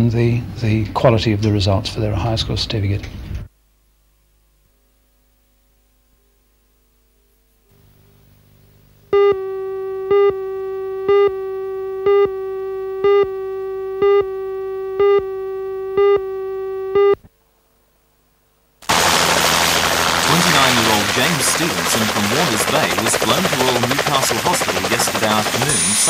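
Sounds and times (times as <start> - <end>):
buzzy test tone: 7.7 - 17.3, 18.8 - 26.0
beeps: 9.1 - 17.2
helicopter rotor and engine: 18.9 - 26.0.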